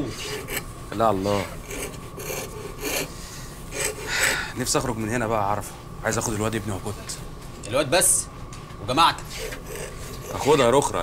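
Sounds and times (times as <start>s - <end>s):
rasp scraping wood: 0.0s - 4.5s, 9.2s - 10.9s.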